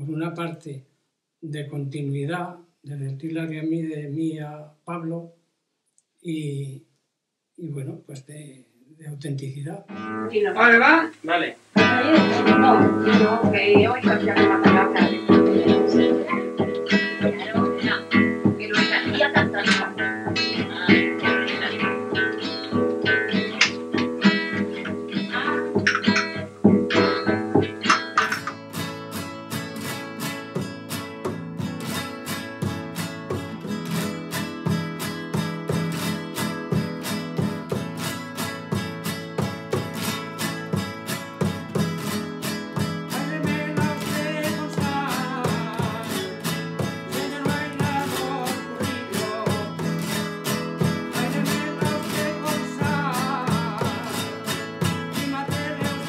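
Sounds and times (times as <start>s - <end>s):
acoustic guitar strumming: 9.9s - 56.0s.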